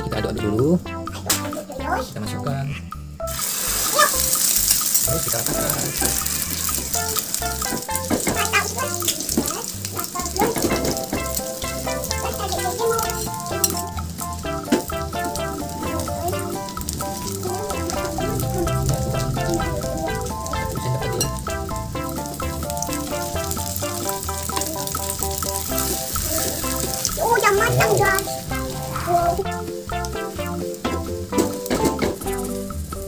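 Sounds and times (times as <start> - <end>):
background music: 0.0 - 33.0
food sizzling in a frying pan: 3.3 - 33.0.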